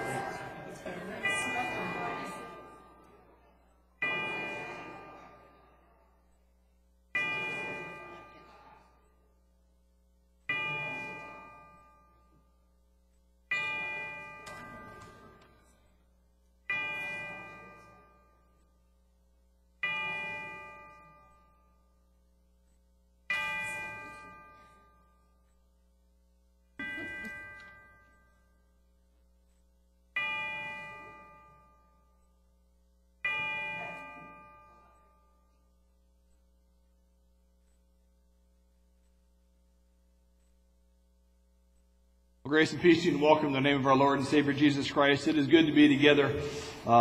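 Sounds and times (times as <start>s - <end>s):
bell ringing: 0.0s - 3.2s, 13.5s - 15.8s, 26.8s - 28.9s.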